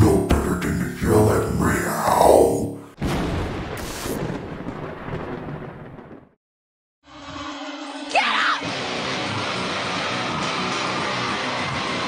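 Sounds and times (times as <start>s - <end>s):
boom-like hit: 3.0s - 6.3s.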